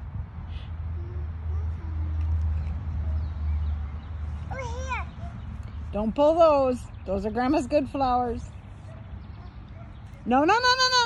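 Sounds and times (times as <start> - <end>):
toddler vocal sound: 4.5 - 5.2.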